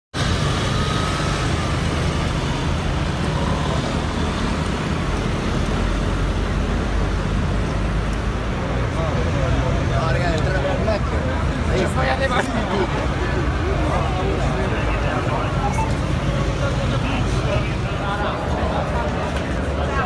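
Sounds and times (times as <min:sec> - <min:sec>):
low traffic rumble: 0:00.1 - 0:20.0
people's voices: 0:00.5 - 0:20.0.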